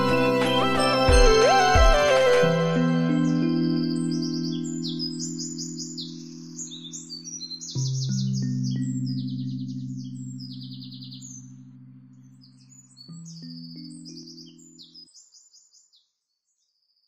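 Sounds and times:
sustained synthesizer chords: 0.0 - 7.5
birds chirping and trilling: 0.0 - 16.8.

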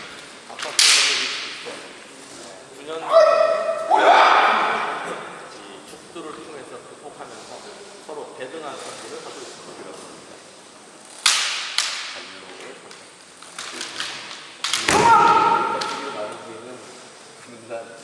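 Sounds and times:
bamboo swords cracking: 0.0 - 1.6, 11.2 - 12.2, 13.5 - 16.2.

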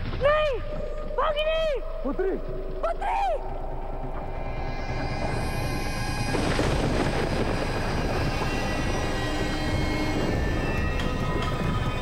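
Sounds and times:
faint sustained music tones: 0.0 - 12.0.

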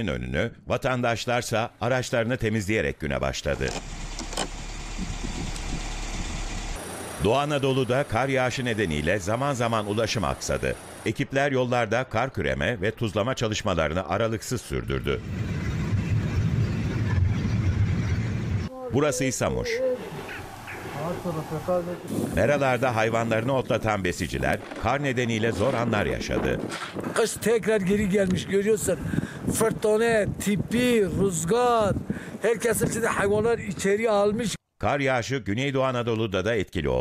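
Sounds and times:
narration: 0.0 - 4.6, 6.8 - 15.4, 18.6 - 37.0.

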